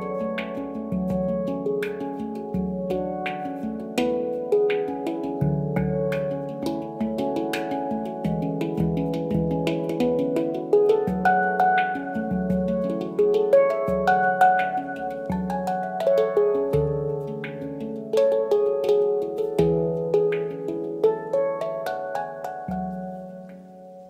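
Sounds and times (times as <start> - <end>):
low handpan bass note: 0.0 - 23.8
handpan notes ringing: 0.0 - 24.0.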